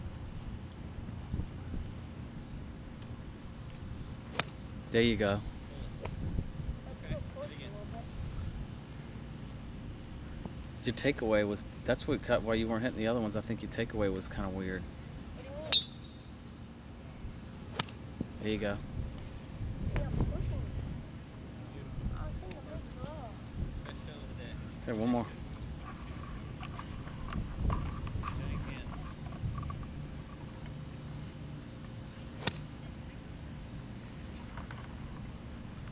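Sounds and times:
low outdoor background: 0.0 - 35.9
golf club striking ball: 15.7 - 16.3, 32.4 - 32.7
golf club hitting ball: 32.4 - 32.7.

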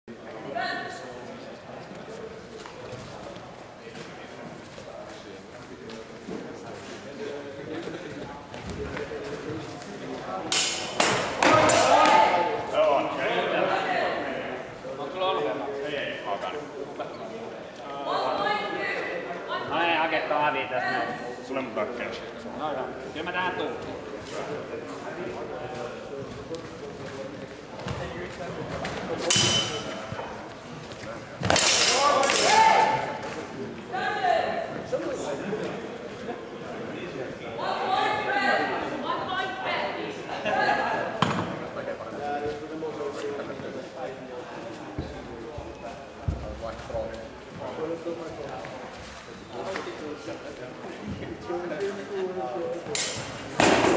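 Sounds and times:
swords clashing: 10.5 - 12.2, 29.3 - 29.9, 31.4 - 32.8, 53.0 - 53.9.

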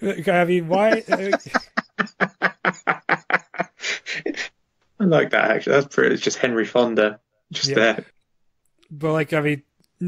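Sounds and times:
man laughing: 0.6 - 4.5.

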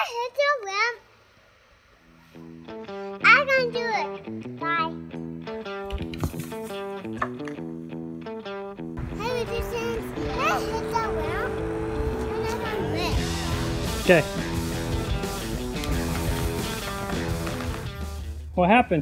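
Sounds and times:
child talking: 0.0 - 1.1, 3.1 - 5.0, 9.0 - 13.2
background music repeating notes: 9.0 - 18.1.

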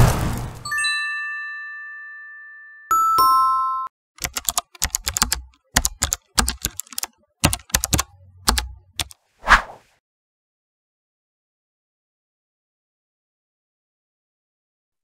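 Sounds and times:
keyboard typing clicks: 4.2 - 9.2.

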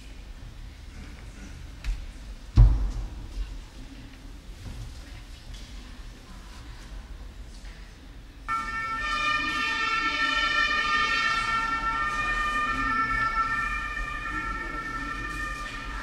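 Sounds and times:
low murmur: 0.0 - 16.0
chord of high steady tones: 8.5 - 16.0.

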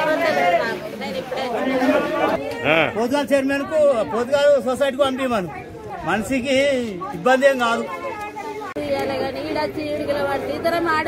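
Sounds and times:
woman talking: 8.1 - 11.0.

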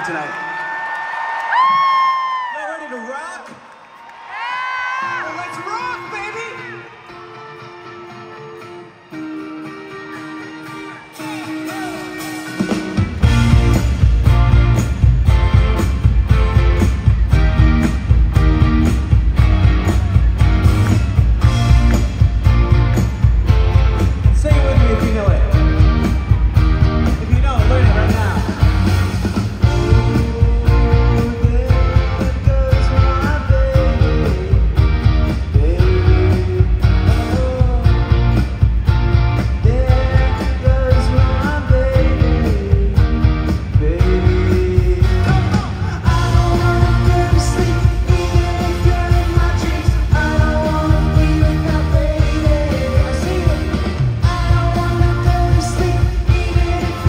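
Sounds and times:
crowd whooping: 0.0 - 13.2, 16.7 - 24.1
live rock band playing: 4.9 - 57.0
held electric guitar chords: 6.8 - 57.0
bass and drums: 11.2 - 57.0
person singing: 29.6 - 38.4, 39.6 - 57.0.

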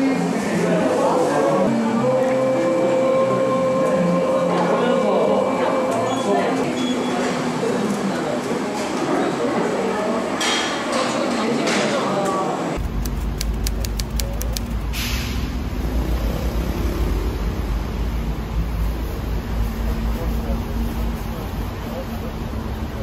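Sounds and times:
indistinct voices in busy room: 0.0 - 23.0
sharp clicks: 12.8 - 14.8.

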